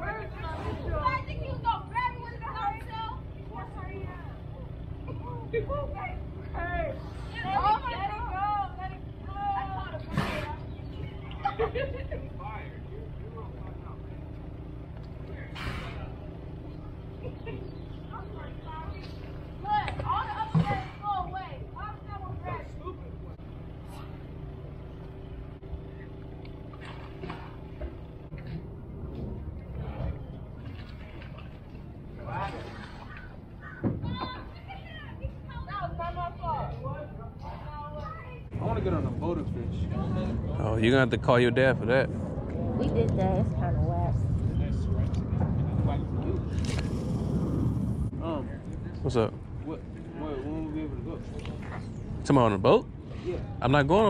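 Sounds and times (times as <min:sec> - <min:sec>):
indistinct voices talking: 0:00.0 - 0:26.7
low machine hum: 0:00.0 - 0:54.0
steady low rumble: 0:00.0 - 0:54.0
children squealing and calling out: 0:32.3 - 0:35.2.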